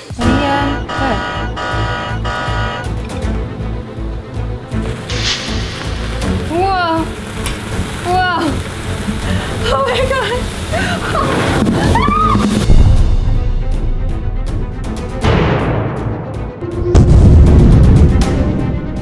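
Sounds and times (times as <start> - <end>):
electronic background music: 0.0 - 19.0
sparklers fizzing: 4.6 - 12.6.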